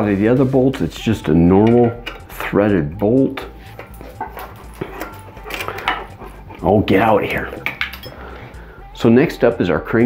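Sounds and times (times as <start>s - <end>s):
dog breathing and sniffing: 3.6s - 6.8s.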